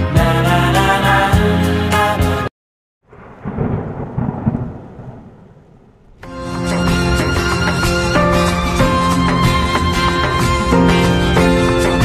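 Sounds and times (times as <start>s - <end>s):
thunder rumbling: 3.0s - 9.2s.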